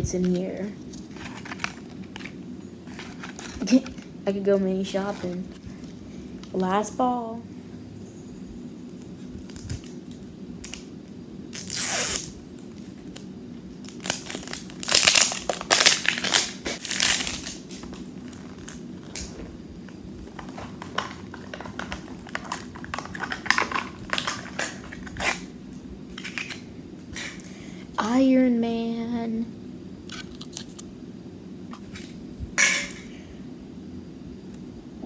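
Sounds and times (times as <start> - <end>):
plastic wrapping crinkling: 0.7 - 4.1, 13.8 - 25.5
plastic wrapping tearing: 1.0 - 2.3, 11.6 - 12.4, 13.8 - 19.3, 20.3 - 25.5.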